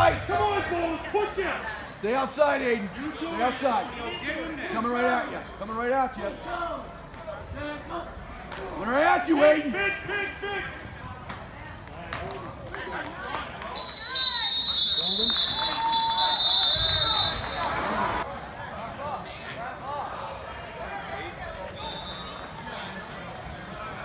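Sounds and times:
referee's whistle blast: 0:13.8 - 0:17.7.

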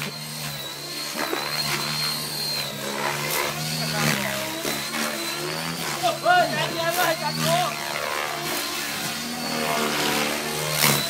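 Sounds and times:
model helicopter whine and rotor hum: 0:00.0 - 0:11.0.

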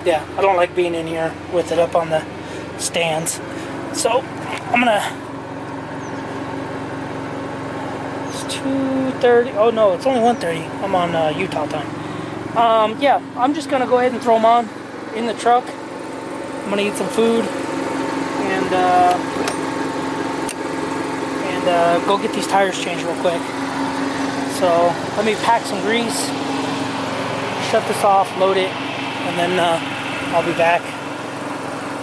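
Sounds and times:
generator humming: 0:00.0 - 0:32.0.

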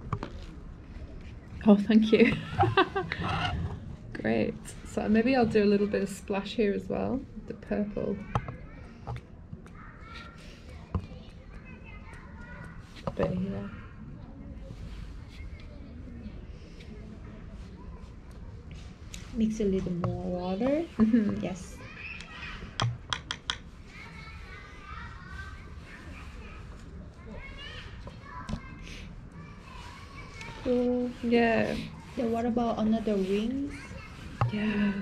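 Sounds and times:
faint voices talking: 0:00.0 - 0:35.0.

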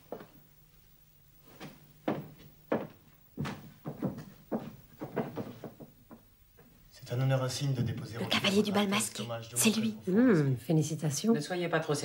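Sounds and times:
footsteps on a hard floor: 0:00.0 - 0:00.4, 0:01.4 - 0:06.7.

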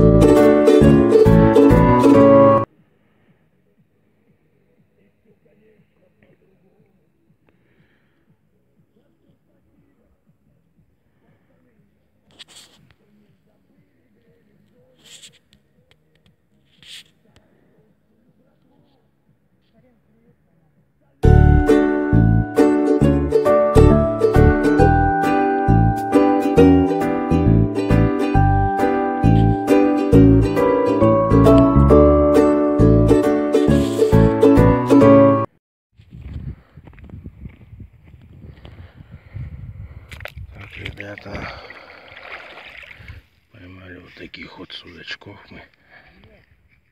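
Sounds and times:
footsteps on dry ground: 0:36.0 - 0:39.0
microphone handling noise: 0:36.0 - 0:41.6
wind rumbling on microphone: 0:36.0 - 0:41.7.

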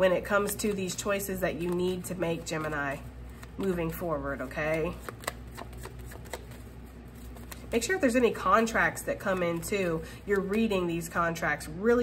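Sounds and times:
cards being shuffled: 0:00.3 - 0:10.9.

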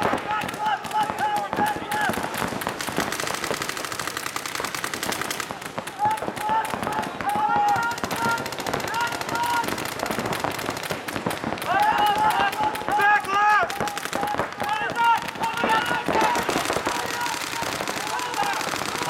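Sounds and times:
paintball markers firing: 0:00.0 - 0:19.0
people shouting: 0:00.0 - 0:19.0.

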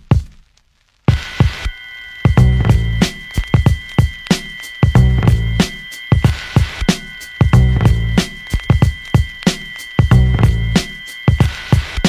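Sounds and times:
background music with drum beat: 0:00.0 - 0:00.5, 0:01.1 - 0:12.0.

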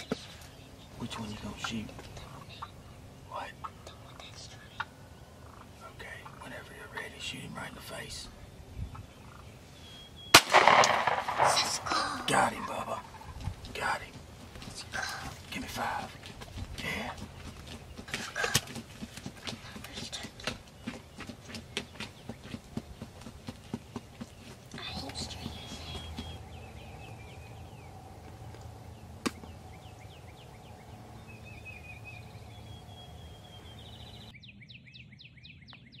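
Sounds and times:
small birds chirping: 0:00.0 - 0:36.0
turkey wings thumping: 0:10.4 - 0:26.9, 0:28.2 - 0:29.7.

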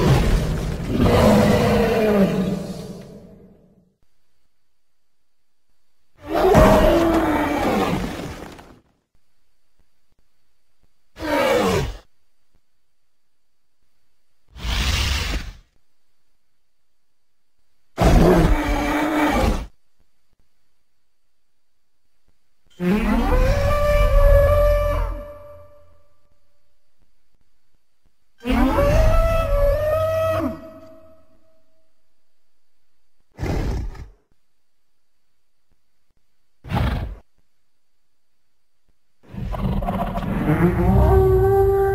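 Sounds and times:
elephant creature calls: 0:00.0 - 0:03.5, 0:22.8 - 0:25.8, 0:39.3 - 0:41.9
deep animal roar: 0:00.0 - 0:03.8, 0:06.2 - 0:08.7, 0:18.0 - 0:19.7, 0:22.7 - 0:25.8, 0:39.2 - 0:41.9.

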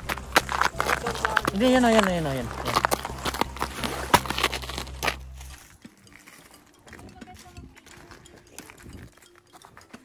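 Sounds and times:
hockey sticks tapping ice: 0:00.0 - 0:05.3
skate blades on ice: 0:00.0 - 0:05.6.

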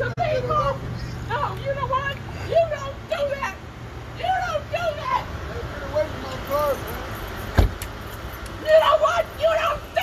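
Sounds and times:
sharp thump: 0:07.6 - 0:07.9.

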